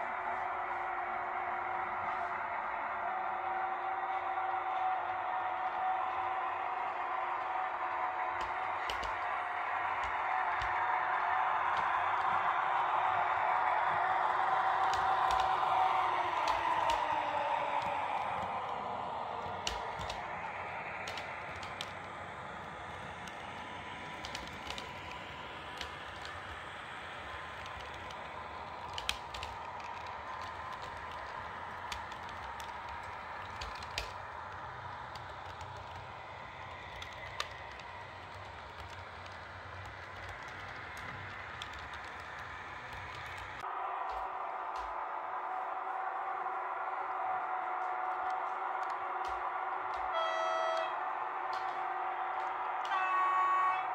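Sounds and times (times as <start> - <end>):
wheels clicking on rails: 0.0 - 45.1, 46.7 - 53.0
model train motor whining: 7.7 - 43.6.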